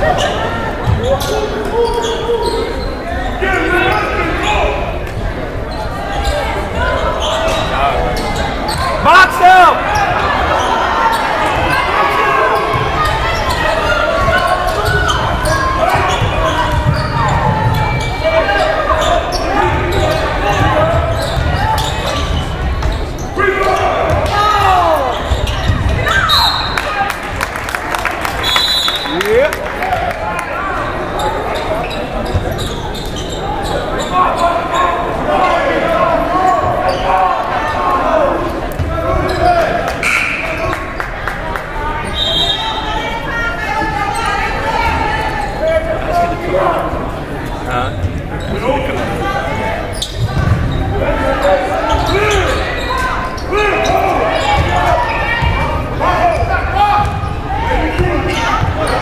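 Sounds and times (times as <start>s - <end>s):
echoing voices: 0.0s - 59.0s.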